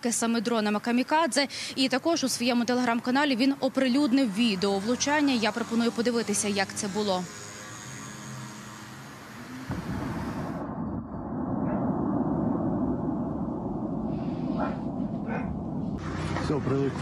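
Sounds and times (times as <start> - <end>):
dense low rumble: 9.7 - 17.0.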